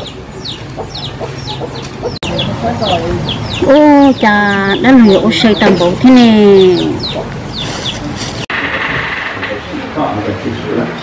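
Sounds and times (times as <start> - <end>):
chicks peeping: 0.0 - 8.5.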